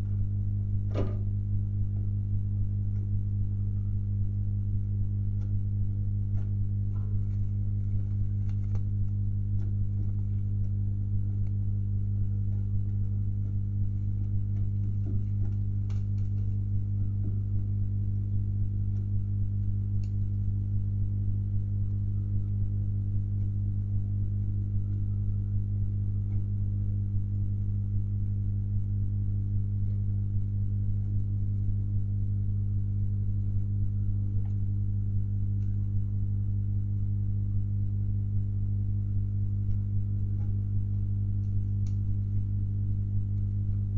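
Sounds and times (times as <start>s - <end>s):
electrical hum: 0.0s - 43.9s.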